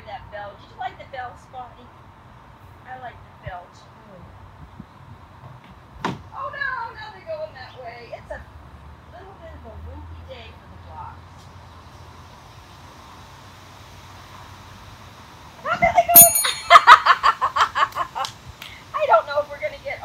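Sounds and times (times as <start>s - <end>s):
small bell ringing: 16.1s - 17.0s
woman's voice: 18.9s - 20.0s.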